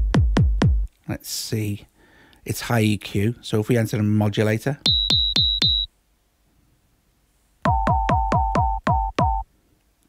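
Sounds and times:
electronic kick drum hits: 0.0 - 0.9, 4.9 - 5.9, 7.7 - 9.4
high ringing tone: 4.9 - 5.9.

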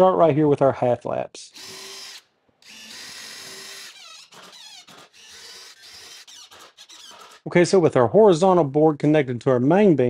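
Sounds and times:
cordless drill driving screw: 1.6 - 7.5
high-pitched squealing: 1.6 - 7.5.

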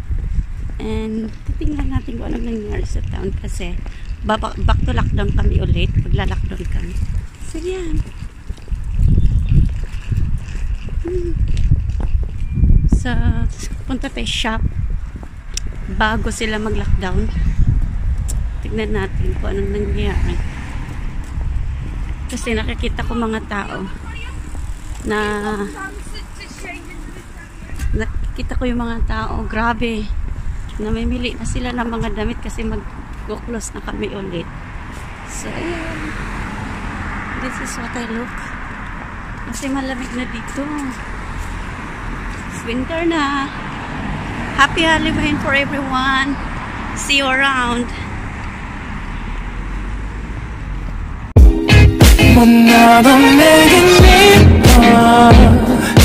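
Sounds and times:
traffic rumble: 0.0 - 56.0.

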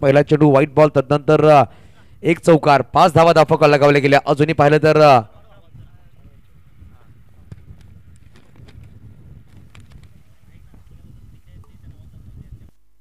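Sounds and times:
faint distant voices: 10.0 - 12.8.

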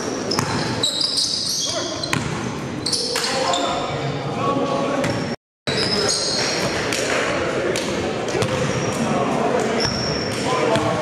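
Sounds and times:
sneaker squeaks: 0.0 - 4.2, 5.0 - 6.8, 8.4 - 11.0.

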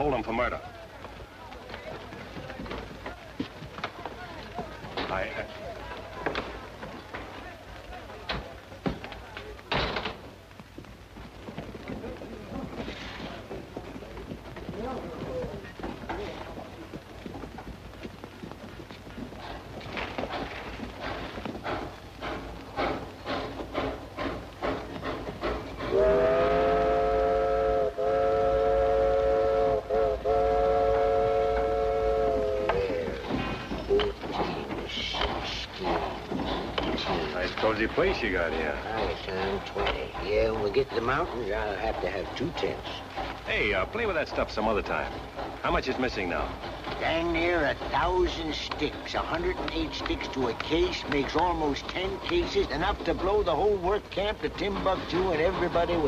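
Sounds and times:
steam locomotive chuffing: 0.0 - 56.0
steam whistle chord: 25.9 - 32.6.

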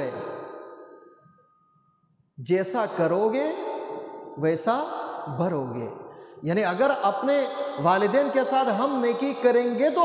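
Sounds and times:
man speaking: 0.0 - 0.3, 2.4 - 3.8, 4.4 - 10.0.

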